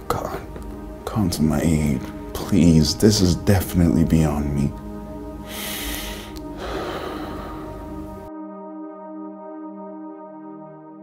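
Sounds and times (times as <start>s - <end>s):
soft background music: 0.0s - 11.0s
man sniffing while weeping: 5.5s - 7.7s.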